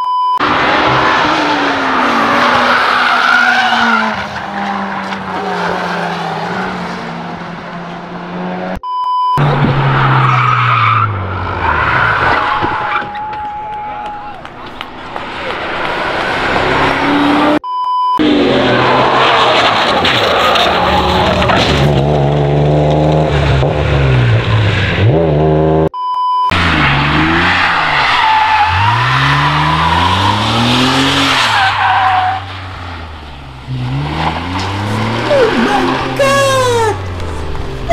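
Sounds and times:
short beep tone: 0:00.0 - 0:00.4, 0:08.8 - 0:09.5, 0:17.6 - 0:18.2, 0:26.0 - 0:26.5
car engines revving: 0:00.3 - 0:17.6, 0:18.2 - 0:37.9
tyres squealing: 0:01.7 - 0:07.0, 0:26.6 - 0:37.9.

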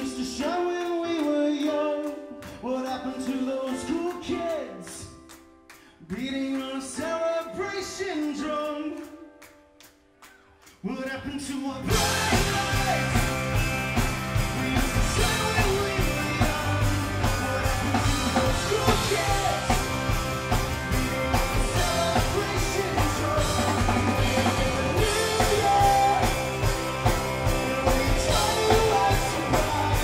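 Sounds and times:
bass guitar: 0:11.8 - 0:30.0
electric guitars: 0:11.8 - 0:30.0
drum kit beat: 0:11.9 - 0:30.0
voices singing: 0:11.9 - 0:30.0.

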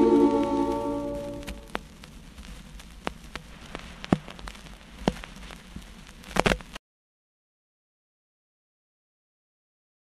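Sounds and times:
vinyl record hiss and crackles: 0:00.0 - 0:06.8.

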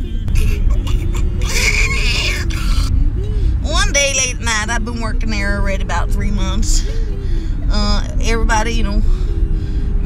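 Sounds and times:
road rumble inside car: 0:00.0 - 0:10.0.

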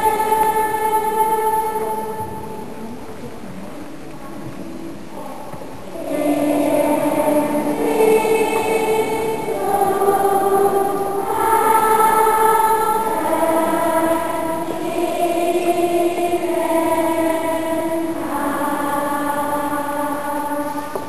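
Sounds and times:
choir singing held chords: 0:00.0 - 0:03.0, 0:05.1 - 0:21.0.

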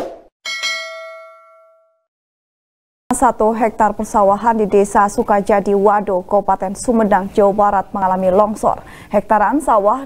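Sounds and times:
bright bell ding: 0:00.5 - 0:02.0.

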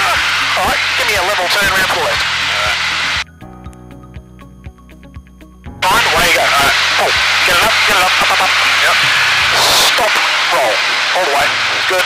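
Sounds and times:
background music with steady beat: 0:00.0 - 0:10.2
aircraft cockpit engine and airflow: 0:00.0 - 0:12.0.

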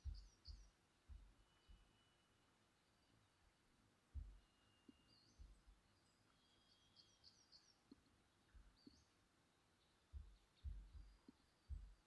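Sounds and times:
soft low thumps: 0:00.0 - 0:02.1, 0:04.0 - 0:06.0, 0:07.8 - 0:09.3, 0:10.0 - 0:12.0
distant bird chirps: 0:00.0 - 0:12.0.

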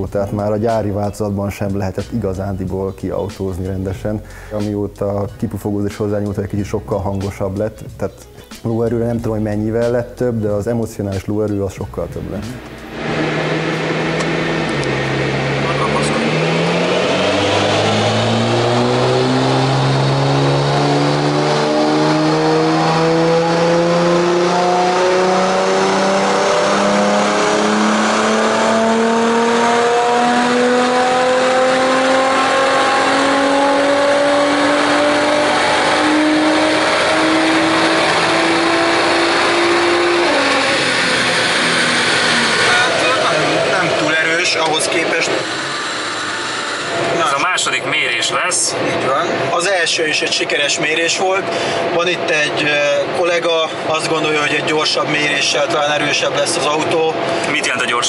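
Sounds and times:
car engine revving on dynamometer: 0:12.3 - 0:58.0.

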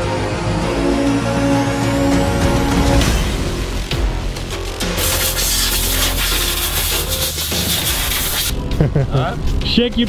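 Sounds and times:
background music: 0:00.0 - 0:10.0
tool rasping on a part: 0:05.0 - 0:08.5.

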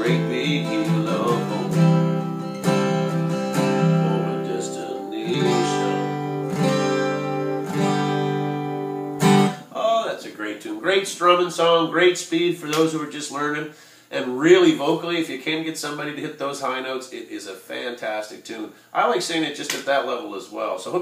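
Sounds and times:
man speaking: 0:00.0 - 0:01.8, 0:04.0 - 0:06.3, 0:09.6 - 0:21.0
acoustic guitar strummed: 0:00.0 - 0:09.8.

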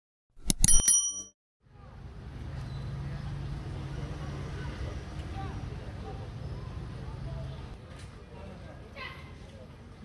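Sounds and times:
bright bell-like ding: 0:00.5 - 0:01.3
street low hum: 0:00.9 - 0:10.0.

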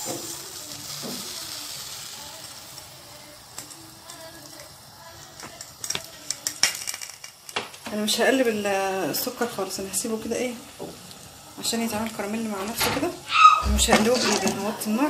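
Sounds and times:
sugar pouring into metal pan: 0:00.0 - 0:07.6.

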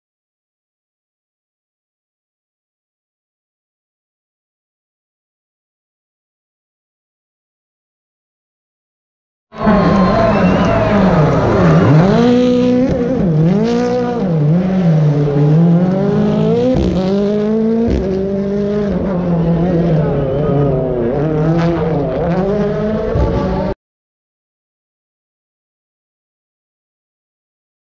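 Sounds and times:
rally car engine revving: 0:09.6 - 0:23.8.

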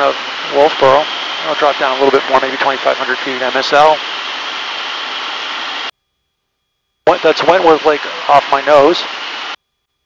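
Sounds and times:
light aircraft engine and propeller: 0:00.0 - 0:05.9, 0:07.1 - 0:09.6.

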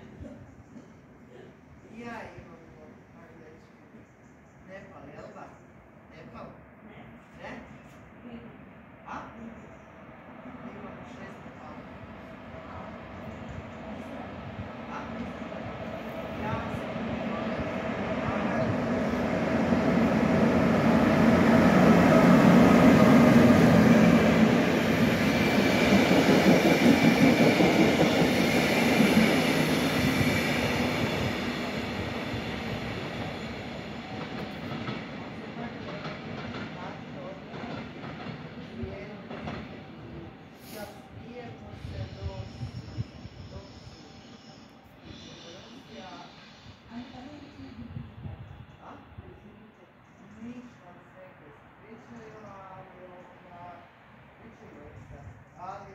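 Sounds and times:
train passing with wheel clatter: 0:00.0 - 0:55.9.

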